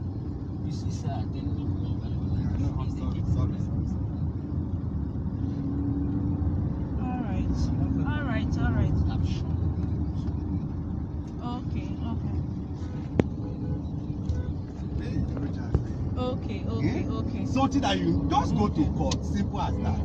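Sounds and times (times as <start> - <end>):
road and engine rumble in car: 0.0 - 20.0
muffled voices: 14.9 - 20.0.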